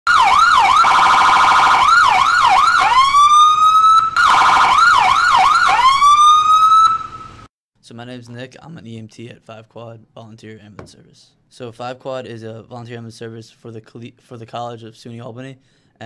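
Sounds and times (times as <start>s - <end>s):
ambulance siren: 0.1s - 7.5s.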